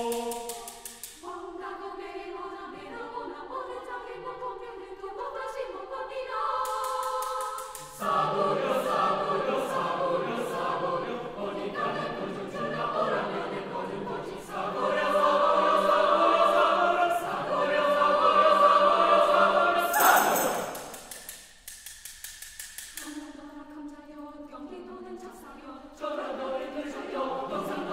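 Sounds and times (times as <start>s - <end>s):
choir singing a cappella: 0.0s - 21.4s, 23.0s - 27.9s
soft quick clicks: 20.3s - 23.3s.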